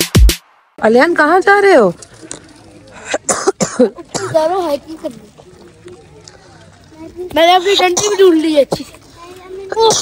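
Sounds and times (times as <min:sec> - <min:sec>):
person coughing: 0:03.2 - 0:04.4.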